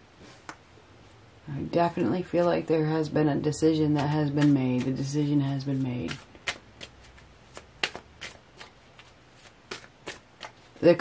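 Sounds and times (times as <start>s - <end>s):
cards being shuffled: 3.8s - 10.9s.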